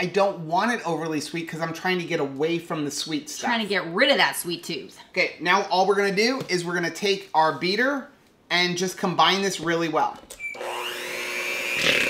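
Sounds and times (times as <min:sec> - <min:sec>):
electric hand mixer whining: 0:10.4 - 0:12.0.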